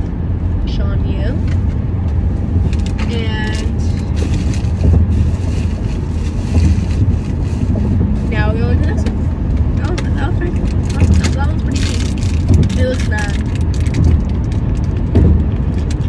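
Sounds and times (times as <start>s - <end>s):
car road and engine rumble: 0.0s - 16.0s
handling rustles and clicks: 1.4s - 16.0s.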